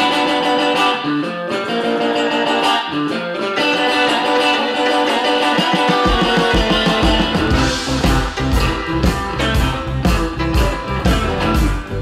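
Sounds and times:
electric guitar playing blues: 0.0s - 12.0s
bass and drum beat: 5.6s - 12.0s.

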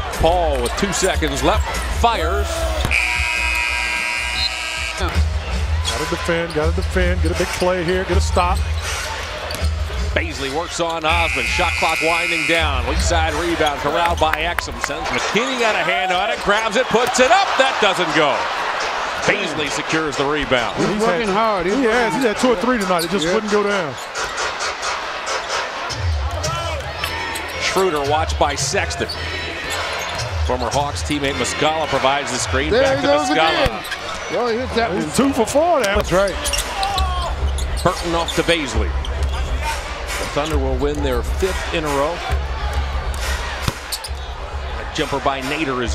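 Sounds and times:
arena crowd din: 0.0s - 45.9s
arena game horn: 2.8s - 5.2s, 11.1s - 12.8s.

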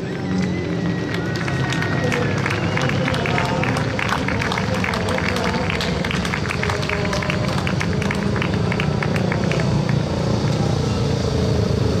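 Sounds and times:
motorcycle engines running together: 0.0s - 12.0s.

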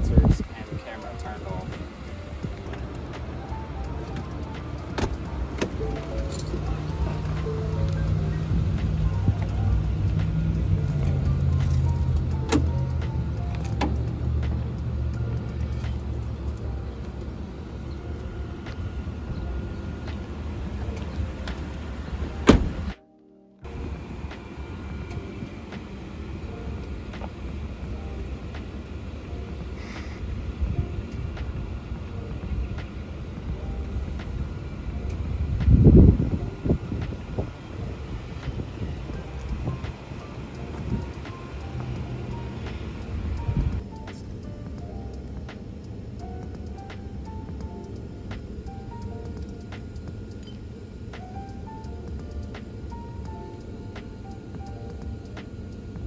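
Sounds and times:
pickup truck engine running: 0.0s - 22.9s
background music: 0.0s - 56.0s.

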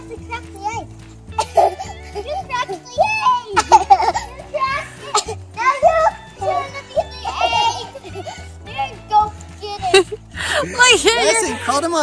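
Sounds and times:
background music with bass line: 0.0s - 12.0s
girls squealing and laughing: 1.4s - 11.7s.

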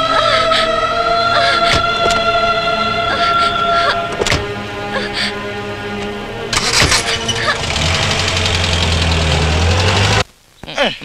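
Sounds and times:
car engine starting and running: 0.0s - 10.3s.

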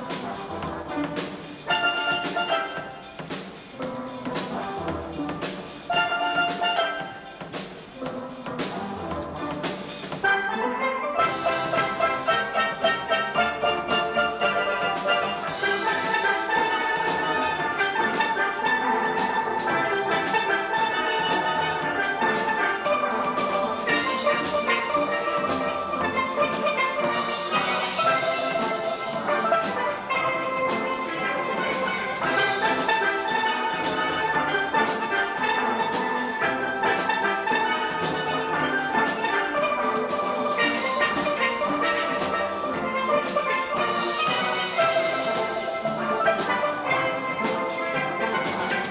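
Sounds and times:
steel band playing calypso: 0.0s - 48.9s.

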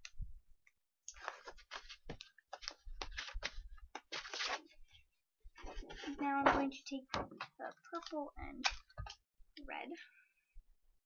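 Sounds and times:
paper sheets rustling: 1.2s - 4.8s.

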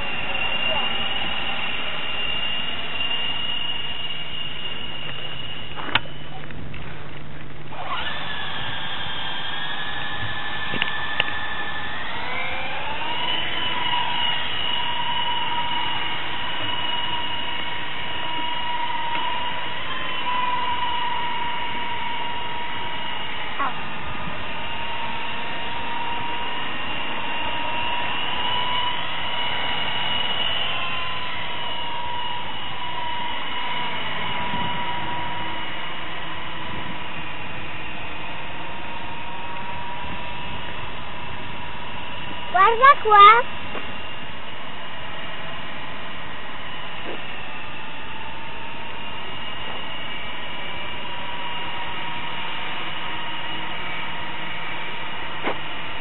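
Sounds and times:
electric helicopter motors whining: 0.0s - 56.0s.

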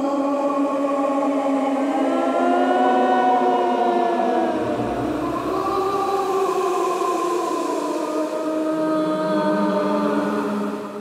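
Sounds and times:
ghostly wailing voices: 0.0s - 11.0s
low rumble: 4.6s - 6.6s.

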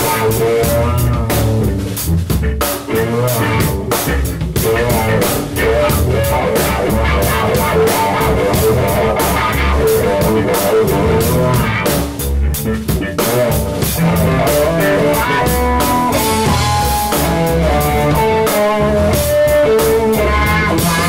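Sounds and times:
electric guitar bending notes: 0.0s - 21.0s
rock band playing: 0.0s - 21.0s.

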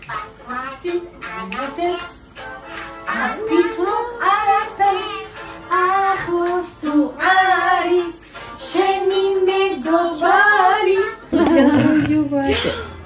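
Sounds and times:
women singing: 0.0s - 2.4s, 3.1s - 12.8s.

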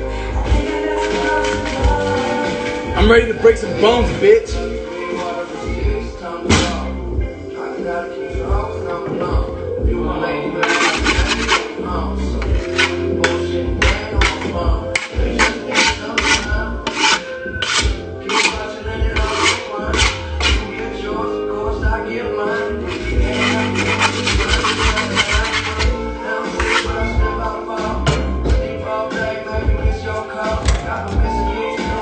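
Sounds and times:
music: 0.0s - 32.0s
hand tool rasping on wood: 10.6s - 11.7s, 12.4s - 20.7s, 23.0s - 26.0s.

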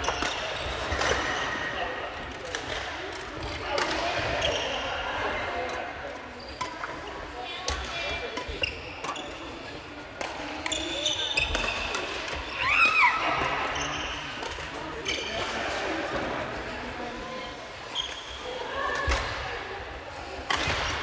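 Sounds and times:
players' voices: 0.0s - 21.0s
sneakers squeaking on floor: 4.3s - 5.0s, 6.4s - 9.9s, 10.6s - 15.5s, 17.9s - 18.6s
rackets hitting shuttlecocks: 20.4s - 21.0s.

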